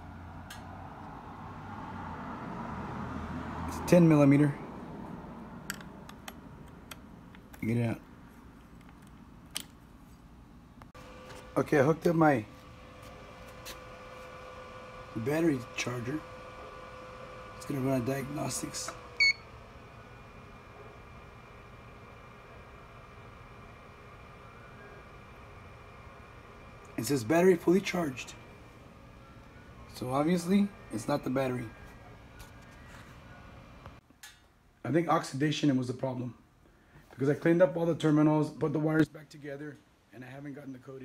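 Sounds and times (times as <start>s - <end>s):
battery charger high beep: 19.2s - 19.5s.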